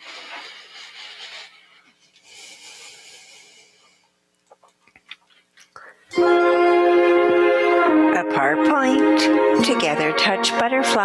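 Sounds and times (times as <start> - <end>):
person breathing: 0.0 - 4.2.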